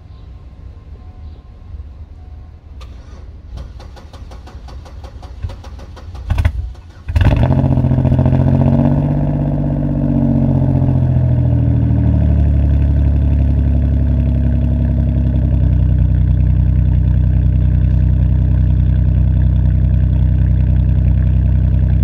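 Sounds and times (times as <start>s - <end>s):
car engine cranking and starting: 2.8s - 22.0s
car engine idling: 2.8s - 22.0s.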